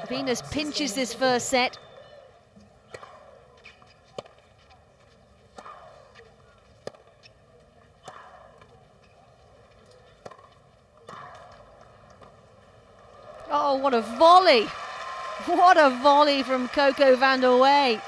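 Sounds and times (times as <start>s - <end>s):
tennis ball hit by racquets: 2.8s - 4.8s, 5.4s - 9.2s, 10.1s - 12.4s.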